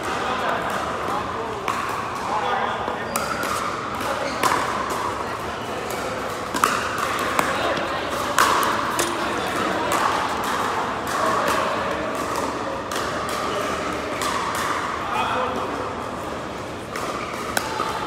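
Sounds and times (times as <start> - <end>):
murmur of voices: 0.0 - 18.0.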